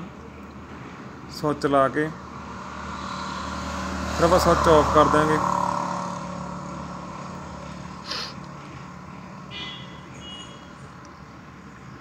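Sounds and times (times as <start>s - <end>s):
vehicle engine humming: 0.0s - 12.0s.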